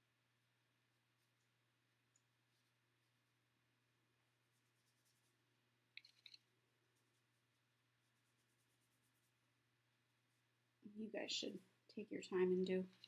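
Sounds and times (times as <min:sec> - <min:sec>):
faint clicks: 0:05.9 - 0:06.4.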